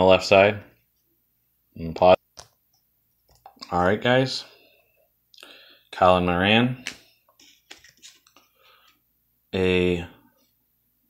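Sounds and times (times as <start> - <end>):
trading cards clicking and rustling: 6.8 - 8.5.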